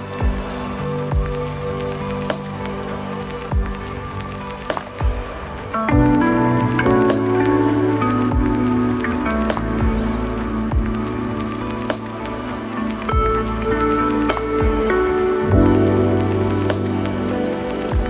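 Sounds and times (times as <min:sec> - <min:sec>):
sustained tones over soft beat: 0:00.0 - 0:18.0.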